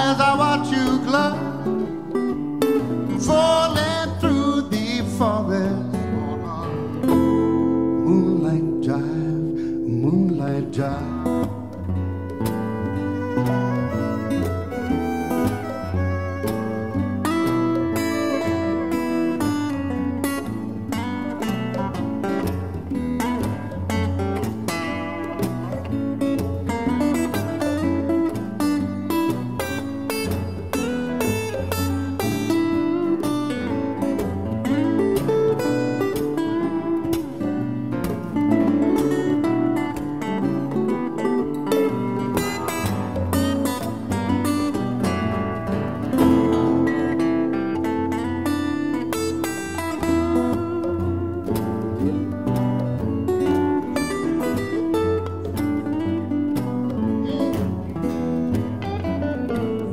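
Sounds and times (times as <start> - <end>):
electric guitar: 0.0 - 59.9
strummed acoustic guitars: 0.0 - 59.9
hand drums: 11.1 - 59.9.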